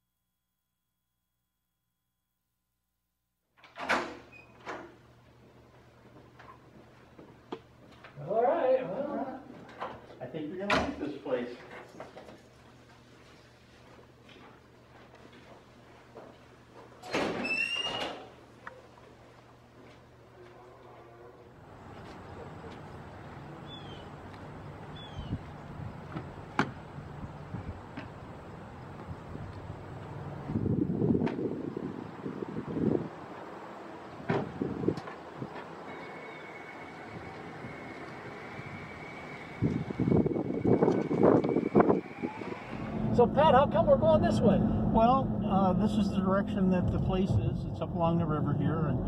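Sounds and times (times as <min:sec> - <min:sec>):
glass doors shoved open: 0:03.6 - 0:04.9, 0:17.0 - 0:18.4
door high squeal: 0:03.8 - 0:04.8, 0:17.0 - 0:18.4, 0:35.9 - 0:43.1
wind buffeting microphone: 0:28.9 - 0:33.4, 0:34.2 - 0:35.6, 0:37.1 - 0:45.5
car doors shutting: 0:34.2 - 0:35.2.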